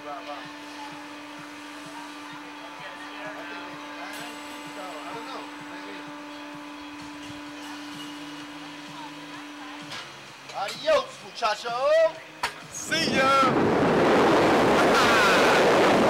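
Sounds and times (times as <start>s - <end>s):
electric machinery hum: 0.0s - 16.0s.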